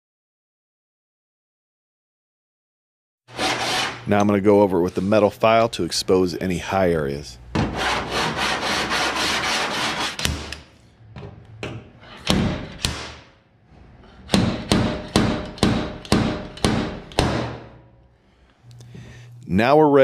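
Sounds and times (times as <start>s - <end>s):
metal file rasping on sheet steel: 3.3s - 4.1s, 7.7s - 10.5s.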